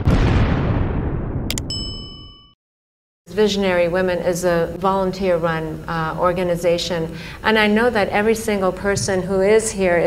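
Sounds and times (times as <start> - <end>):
bright metallic ding: 1.5 - 2.6.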